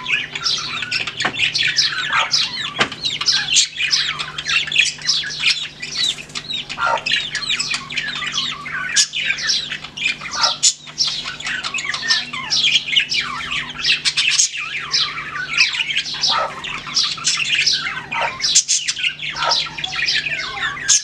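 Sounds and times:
chicks peeping: 0.0 - 21.0.

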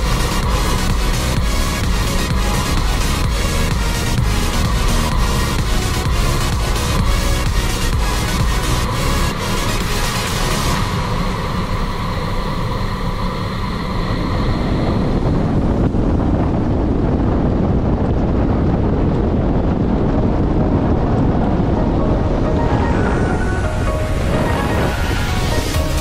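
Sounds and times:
kite buggy rumbling on sand: 0.0 - 26.0
music: 0.0 - 26.0
wind buffeting microphone: 0.0 - 26.0.

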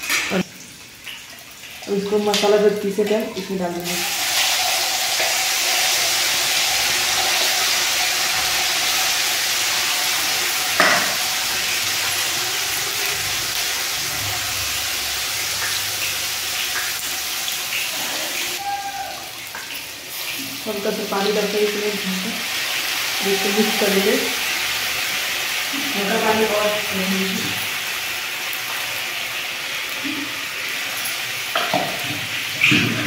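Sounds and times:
spices sizzling in hot oil: 0.0 - 33.0.

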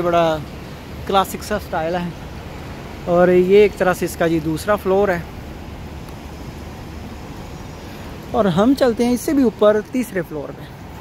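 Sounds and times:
even hiss: 0.0 - 11.0
low city rumble: 0.0 - 11.0.

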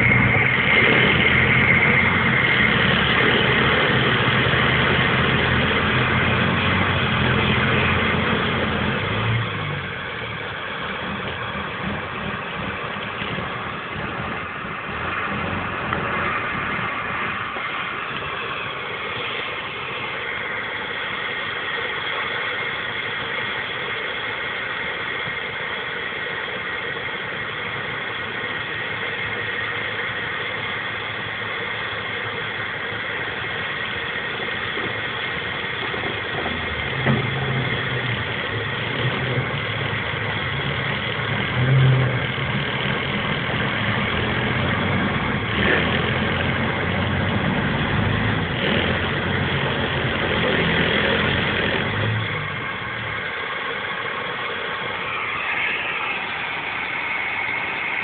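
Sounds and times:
vehicle engine running: 0.0 - 58.0.

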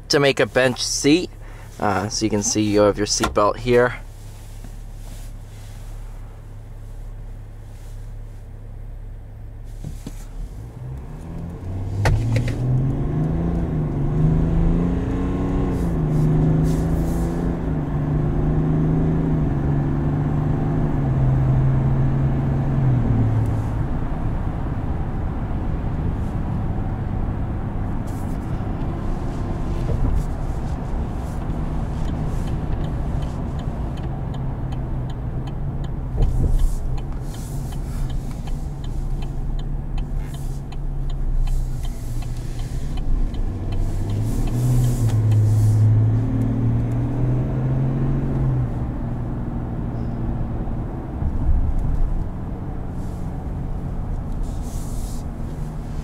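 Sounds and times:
diesel engine accelerating: 0.0 - 56.0
road noise: 0.0 - 56.0.

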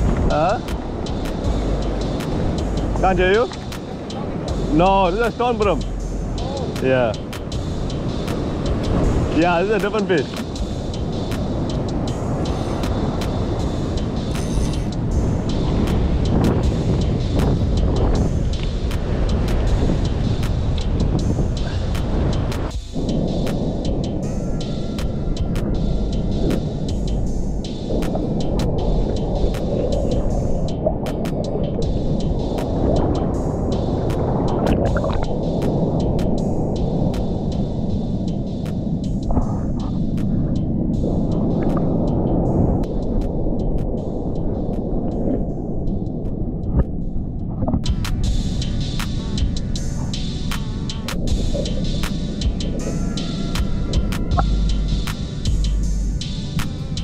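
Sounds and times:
muffled underwater rumbling: 25.2 - 35.5, 39.3 - 42.2.

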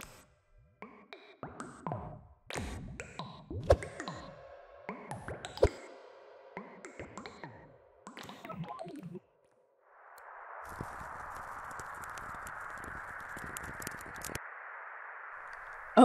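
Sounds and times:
crackles: 6.6 - 16.0
steady hiss: 10.6 - 16.0.

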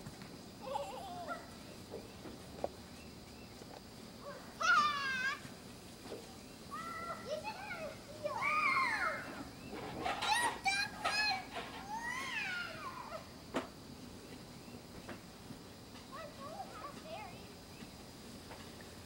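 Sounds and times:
children calling and squealing: 4.2 - 5.5, 6.7 - 13.4, 16.1 - 17.5.

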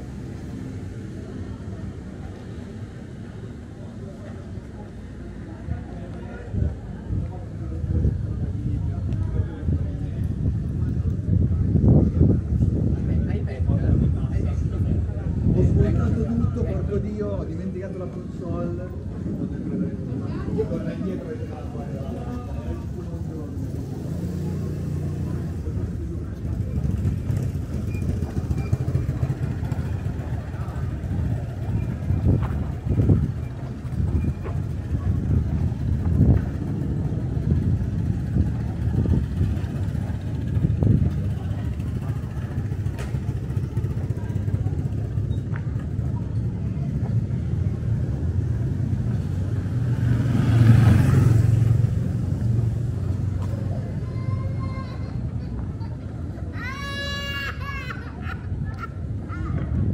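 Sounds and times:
motorbike engine rumbling: 18.3 - 54.6
vehicle passing close: 22.0 - 45.3, 47.3 - 53.8.

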